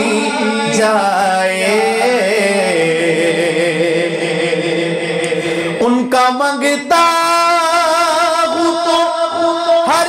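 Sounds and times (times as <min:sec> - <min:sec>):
man singing long note: 0:00.0 - 0:10.0.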